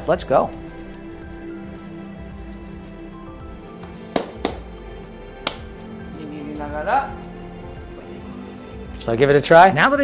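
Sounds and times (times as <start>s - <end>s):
background music: 0.0s - 10.0s
sharp hand claps: 3.8s - 4.8s, 5.4s - 5.7s.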